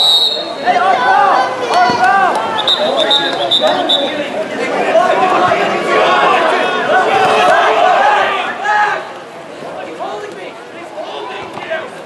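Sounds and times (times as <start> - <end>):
short high whistle blasts: 0.0 - 0.6
people shouting and calling: 0.0 - 12.0.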